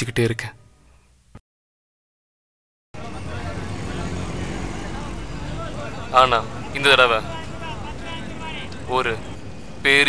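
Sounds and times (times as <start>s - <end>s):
traffic noise: 3.0s - 10.0s.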